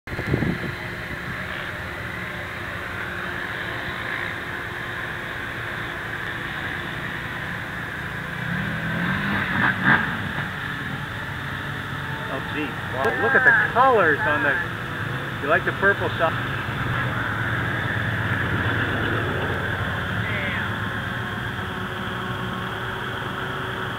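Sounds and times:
off-road vehicle engines running: 0.0 - 23.9
engine revving: 0.1 - 23.9.

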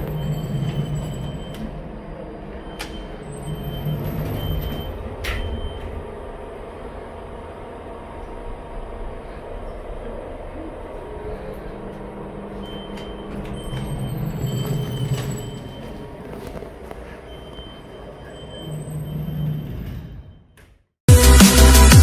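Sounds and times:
lift running hum and rumble: 0.0 - 20.4.

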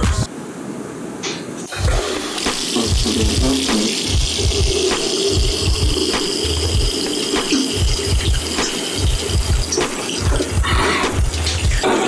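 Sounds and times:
background music with a beat: 1.7 - 12.0
water rushing: 1.7 - 12.0.

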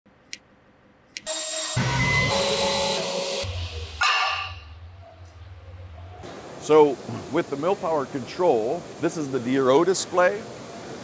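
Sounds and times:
low hum: 1.8 - 7.3.

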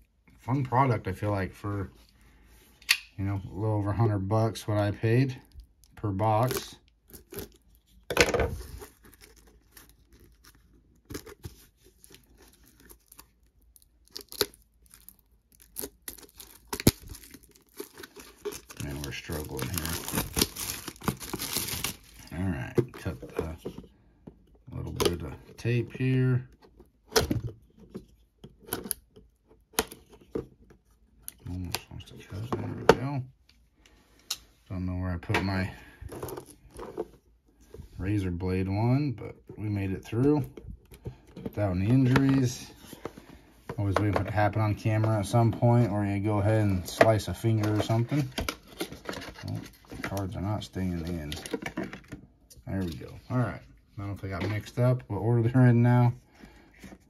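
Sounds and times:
plastic crinkling: 6.5 - 23.2
shrink-wrap ripping: 12.2 - 22.3
cardboard box rustling: 16.2 - 22.2.

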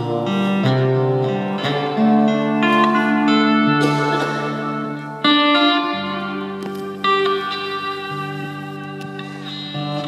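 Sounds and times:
electric lap steel guitar slide: 0.0 - 10.0.

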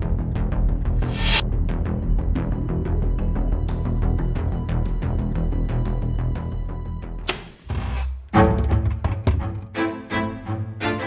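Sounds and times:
dramatic music with low strings: 0.0 - 11.0.

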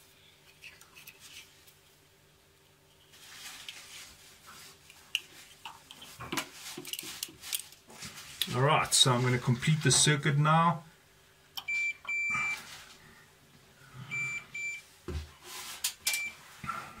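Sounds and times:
wires rustling: 0.4 - 2.0, 2.6 - 10.2.

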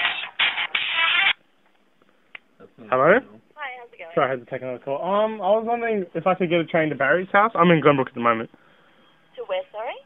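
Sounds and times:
hold music over phone line: 0.0 - 1.5.

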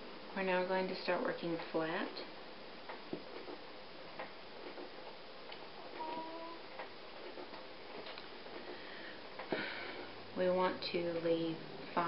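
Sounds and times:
steady low hiss: 0.0 - 12.0.

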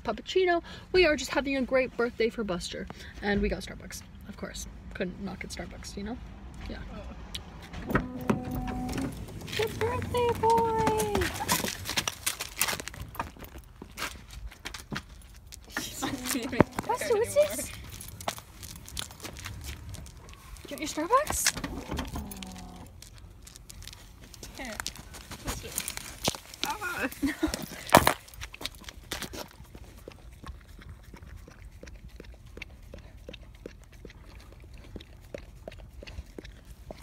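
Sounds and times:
light metallic clicks and jingles: 16.5 - 29.0
dog lapping: 28.9 - 37.0.

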